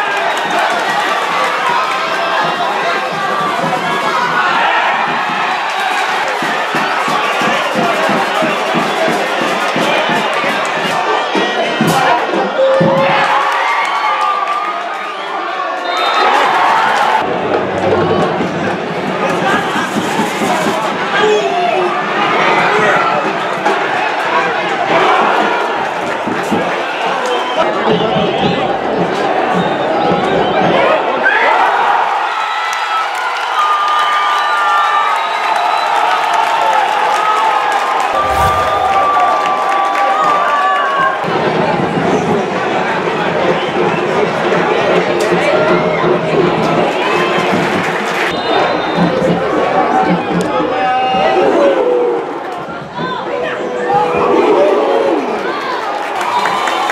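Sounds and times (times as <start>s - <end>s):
stadium crowd cheering: 0.0s - 56.9s.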